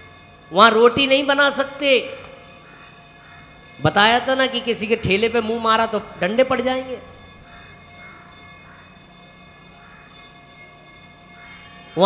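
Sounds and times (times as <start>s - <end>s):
hum of sustained tones: 0.0s - 12.0s.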